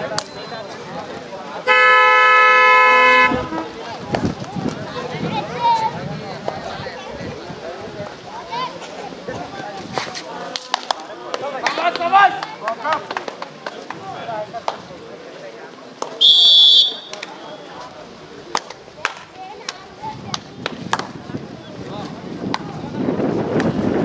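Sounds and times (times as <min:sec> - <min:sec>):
referee's whistle blast: 0:16.2 - 0:17.6.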